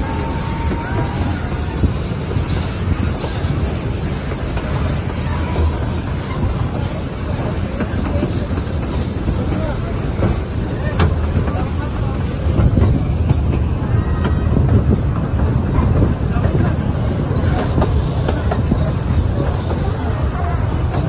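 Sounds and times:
train wheels rumbling: 0:00.0 - 0:21.0.

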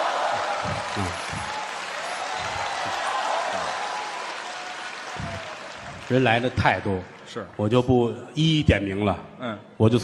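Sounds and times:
audience applauding: 0:00.0 - 0:07.9.

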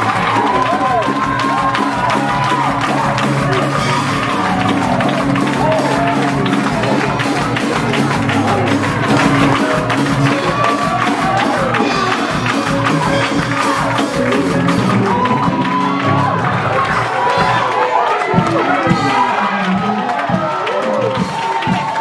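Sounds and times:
congregation calling out and singing: 0:00.0 - 0:22.0
loud driving gospel music: 0:00.0 - 0:22.0.

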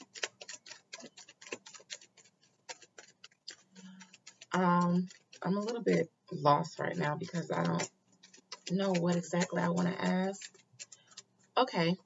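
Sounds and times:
cards being shuffled: 0:00.0 - 0:06.1.

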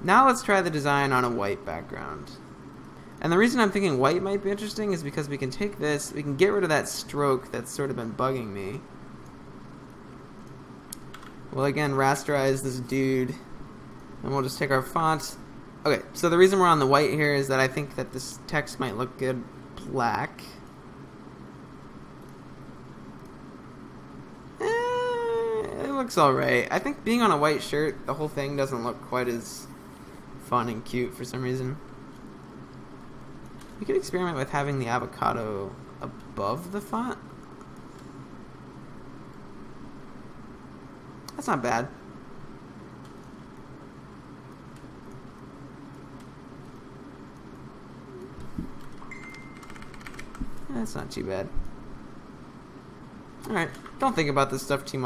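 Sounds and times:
constant hiss: 0:00.0 - 0:55.0
faint steady hum: 0:00.0 - 0:55.0
faint high tone: 0:49.1 - 0:49.7.

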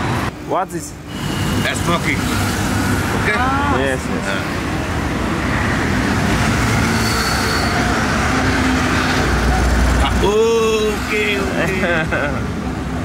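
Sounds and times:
low traffic rumble: 0:00.0 - 0:13.0
road traffic hiss: 0:00.0 - 0:13.0
man saying uh: 0:03.4 - 0:04.4.

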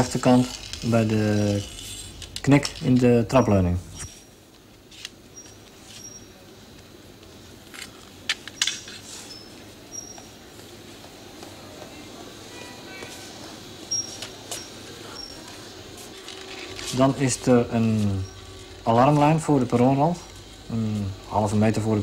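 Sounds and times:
low station hum: 0:00.0 - 0:22.0.

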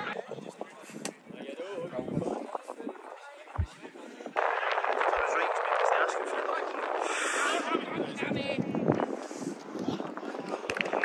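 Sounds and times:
steady rushing noise: 0:01.4 - 0:11.0.

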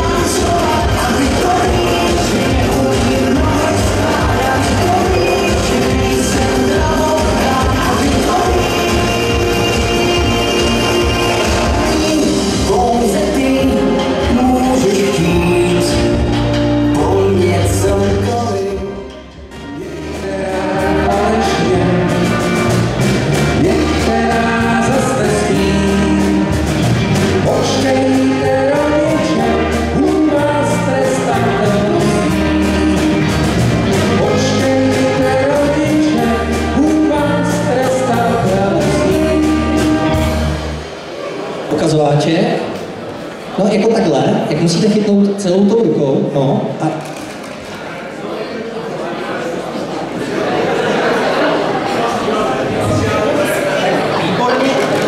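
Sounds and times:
person singing: 0:00.0 - 0:41.3
live dance band playing: 0:00.0 - 0:43.1
crowd murmur: 0:00.0 - 0:44.6, 0:46.6 - 0:55.0.

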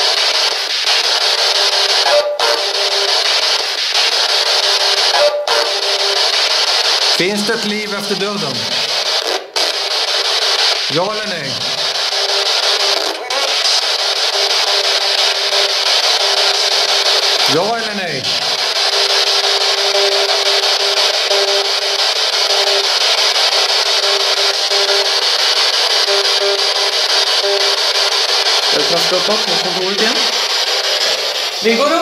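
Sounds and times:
radio static hiss: 0:00.0 - 0:32.0.

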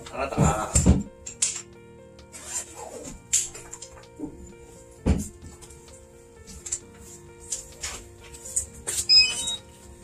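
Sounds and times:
short electronic beeps: 0:09.1 - 0:09.6.

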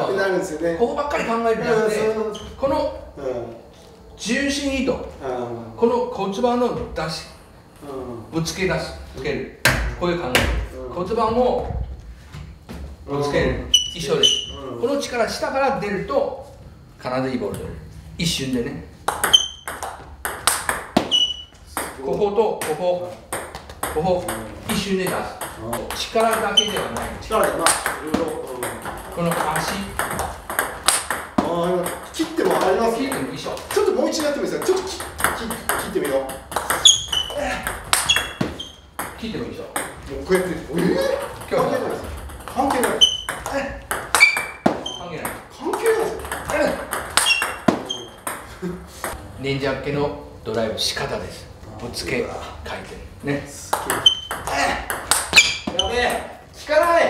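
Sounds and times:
ping pong ball clicks: 0:19.1 - 0:21.9.

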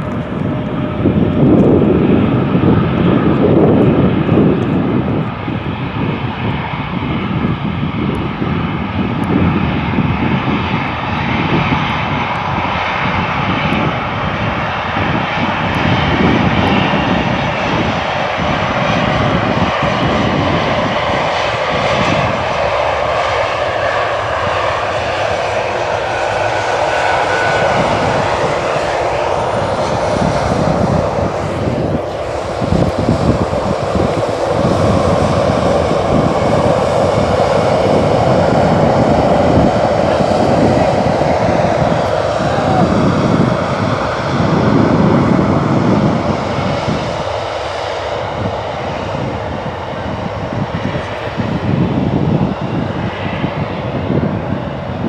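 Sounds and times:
jet engines roaring: 0:00.0 - 0:55.0.

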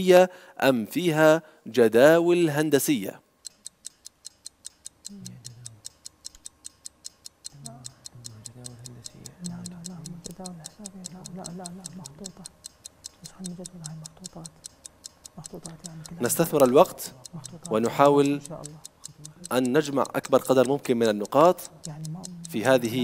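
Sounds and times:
countdown timer ticking: 0:03.4 - 0:23.0.

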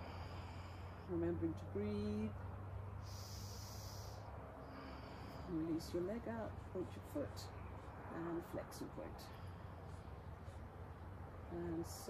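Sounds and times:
person exhaling: 0:03.0 - 0:05.5.

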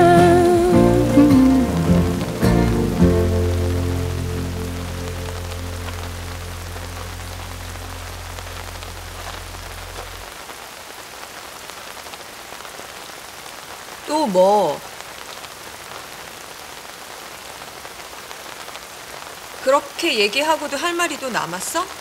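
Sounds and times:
background music: 0:00.0 - 0:10.2
steady rain falling: 0:00.0 - 0:22.0.

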